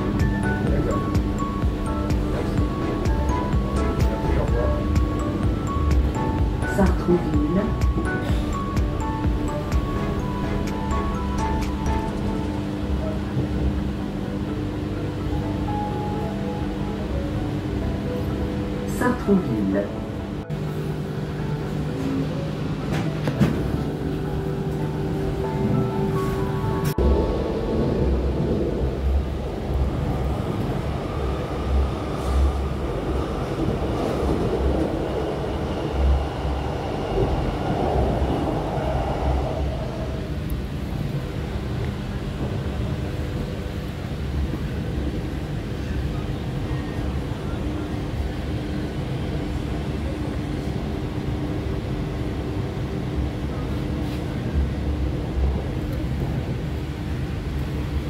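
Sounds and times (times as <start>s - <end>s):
train rolling on track: 0.0s - 58.0s.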